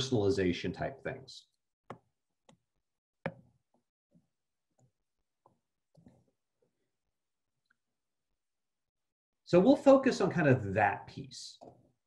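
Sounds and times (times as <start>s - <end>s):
stylus tapping on drawing tablet: 1.8s - 4.2s.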